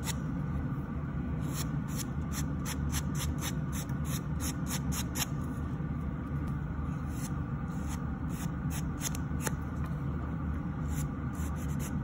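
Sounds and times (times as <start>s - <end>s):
dust collector fan hum: 0.0s - 12.0s.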